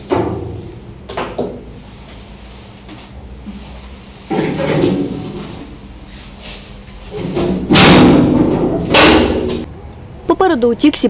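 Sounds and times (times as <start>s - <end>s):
metal hatch clanking: 7.2s - 9.7s.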